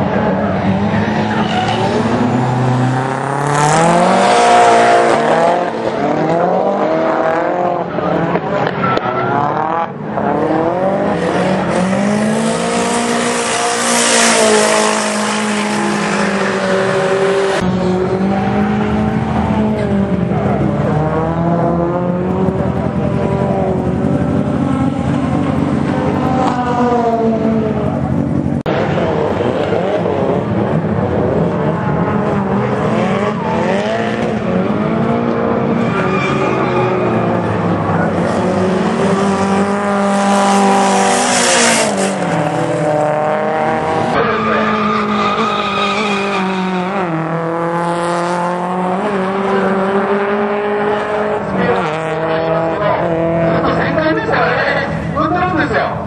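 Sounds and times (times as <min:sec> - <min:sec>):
car engine revving: 0:00.0 - 0:56.0
tyres squealing and skidding: 0:00.4 - 0:04.0, 0:11.2 - 0:17.6, 0:35.6 - 0:38.4, 0:43.6 - 0:47.2.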